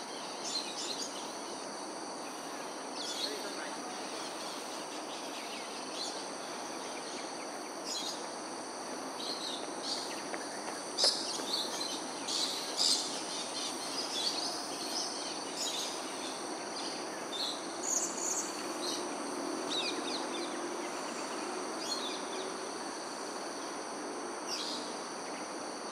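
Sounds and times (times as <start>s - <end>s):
high-pitched insect drone: 0.0s - 25.9s.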